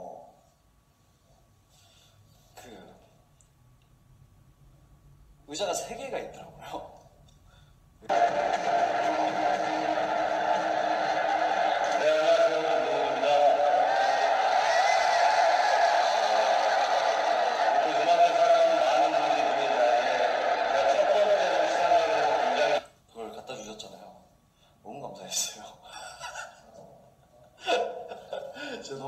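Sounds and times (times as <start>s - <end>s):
voices: 8.0s - 22.8s
music: 8.1s - 13.8s.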